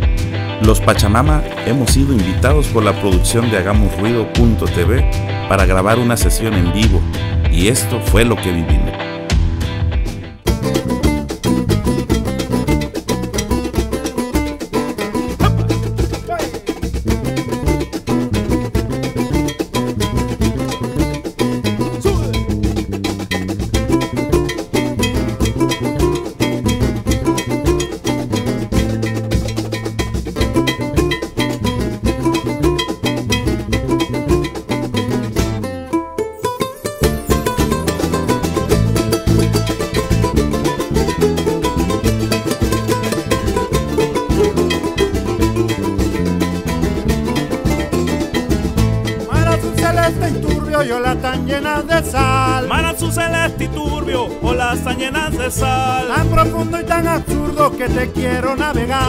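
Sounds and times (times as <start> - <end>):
steady beat: 0.0 - 9.8, 10.4 - 35.7, 36.3 - 59.0
bass guitar: 0.0 - 59.0
strummed small guitars: 0.0 - 59.0.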